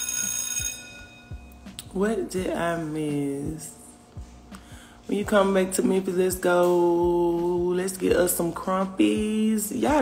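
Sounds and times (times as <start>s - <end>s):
bright bell-like chime: 0.0s - 1.6s.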